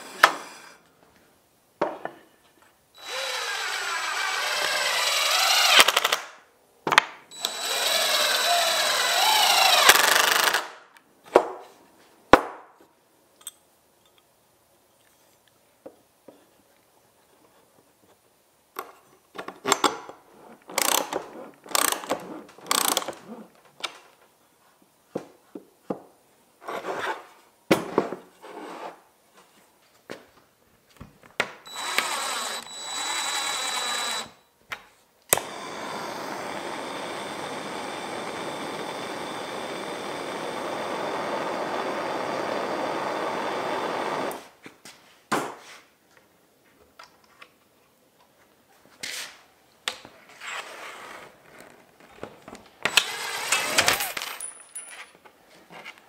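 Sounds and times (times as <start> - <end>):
power drill whining: 0.0 - 0.8, 3.0 - 6.2, 7.3 - 10.8, 21.7 - 23.1, 31.7 - 34.5, 35.3 - 44.5, 52.8 - 54.5
drill drilling into metal: 3.0 - 6.2, 7.3 - 10.7, 31.7 - 34.4, 35.3 - 44.4, 52.9 - 54.2.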